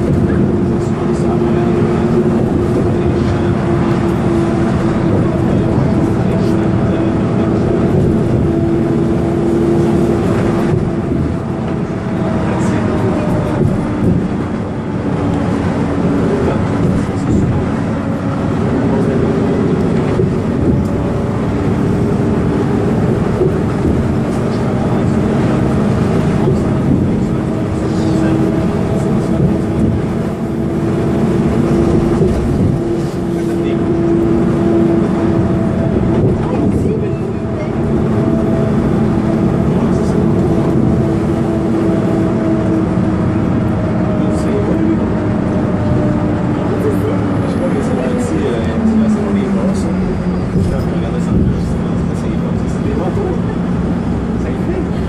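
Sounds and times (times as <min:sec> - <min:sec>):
bus engine and tyre drone: 0:00.0 - 0:55.0.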